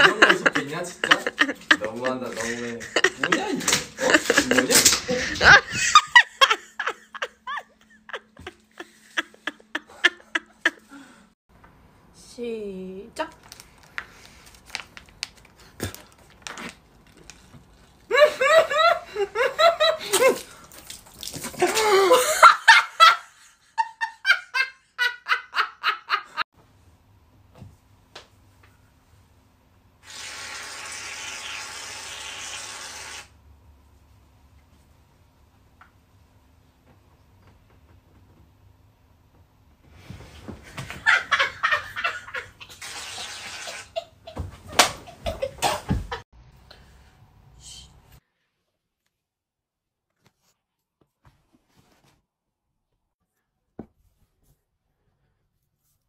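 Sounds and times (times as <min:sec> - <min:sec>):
hearty laughter: 0:00.0 - 0:11.2.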